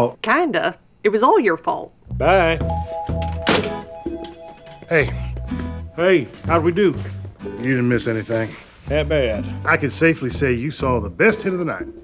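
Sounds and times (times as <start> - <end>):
short music cue: 2.1 - 7.6
phone handset hung up on hook: 3.3 - 3.8.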